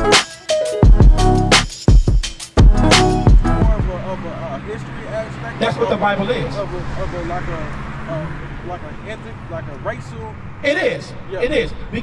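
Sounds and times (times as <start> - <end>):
men talking: 3.4 - 12.0.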